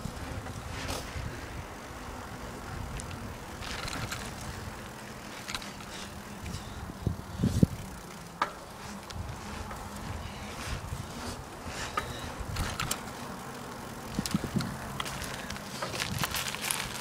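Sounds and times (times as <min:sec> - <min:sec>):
wind rumbling on microphone: 0:00.0 - 0:08.1, 0:08.8 - 0:13.1, 0:14.0 - 0:17.0.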